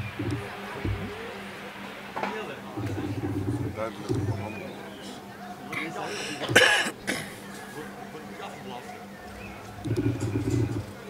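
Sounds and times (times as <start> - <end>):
person coughing: 5.8 - 7.4.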